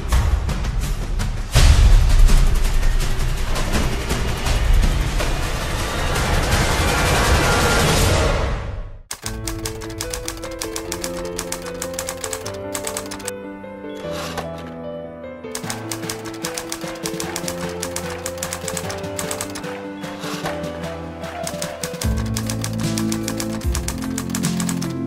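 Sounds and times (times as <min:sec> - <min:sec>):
rapid typewriter clicking: 0:09.1 - 0:13.3, 0:14.0 - 0:14.7, 0:15.6 - 0:25.0.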